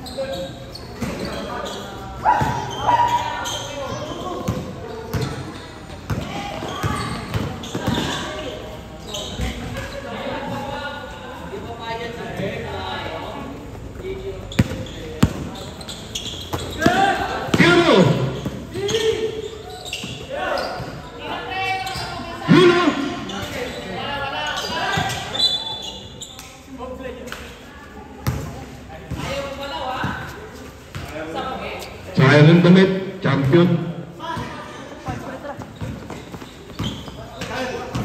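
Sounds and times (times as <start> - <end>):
ball bouncing on hard court: 2.3 - 2.8, 4.4 - 8.4, 14.5 - 19.1, 34.3 - 38.0.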